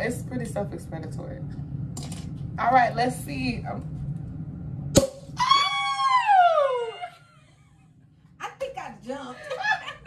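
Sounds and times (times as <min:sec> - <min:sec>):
woman screaming excitedly: 0:05.4 - 0:07.2.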